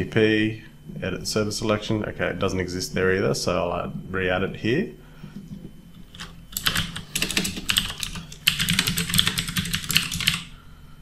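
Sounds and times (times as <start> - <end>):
typing on computer keyboard: 6.2 - 10.5.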